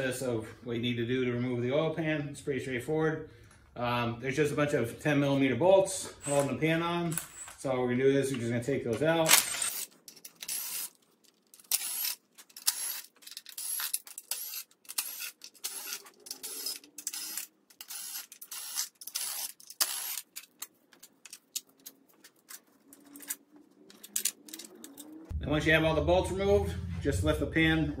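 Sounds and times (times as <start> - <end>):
power ratchet whirring bursts: 12.7 - 20.3.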